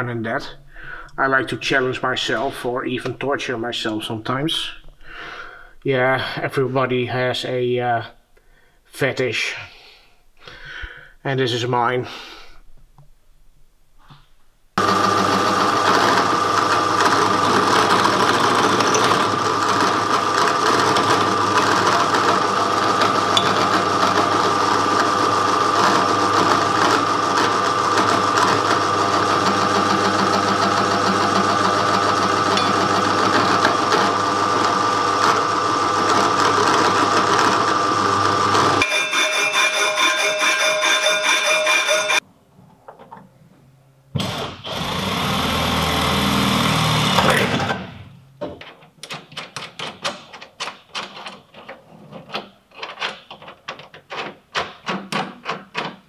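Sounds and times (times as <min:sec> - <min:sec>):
different machine whirring: 0:14.8 - 0:42.2
drill press drilling metal: 0:14.8 - 0:42.2
loud machine noise: 0:14.8 - 0:42.2, 0:44.2 - 0:47.8.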